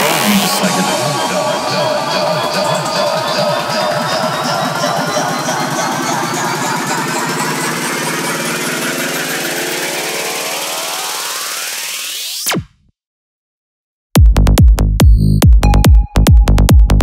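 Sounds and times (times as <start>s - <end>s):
electronic synth texture: 0.0s - 11.7s
rising synth sweep: 0.0s - 12.5s.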